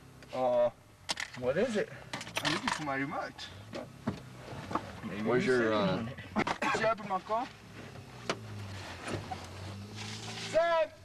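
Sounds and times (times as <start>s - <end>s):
car engine running: 1.9s - 10.6s.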